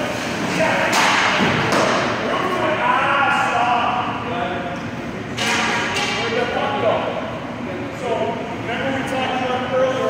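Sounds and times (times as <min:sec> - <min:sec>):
voices echoing in rink: 0:00.0 - 0:10.0
hockey stick hitting puck: 0:00.2 - 0:02.1, 0:05.4 - 0:06.2.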